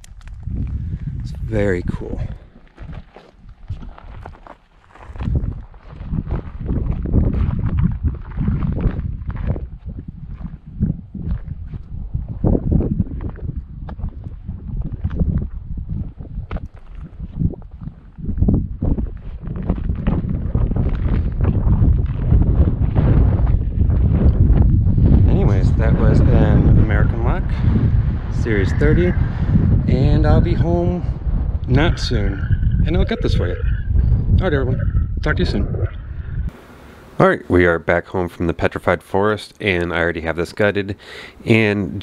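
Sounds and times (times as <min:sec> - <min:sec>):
footsteps on gravel: 0:00.0 - 0:18.2, 0:18.8 - 0:24.3
wind buffeting microphone: 0:00.0 - 0:37.2.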